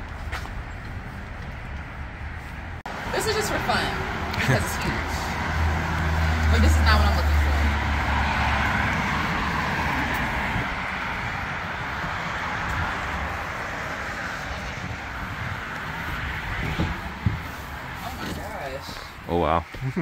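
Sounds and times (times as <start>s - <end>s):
vehicle passing: 0.0s - 19.7s.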